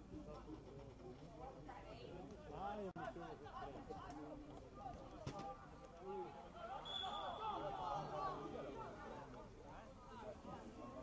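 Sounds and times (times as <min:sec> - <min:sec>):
high whistle: 0:06.9 - 0:07.4.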